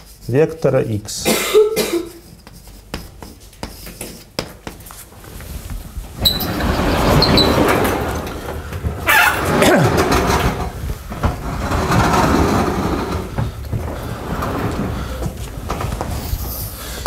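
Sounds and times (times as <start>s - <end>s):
sliding panels rumbling on tracks: 6.1s - 16.9s.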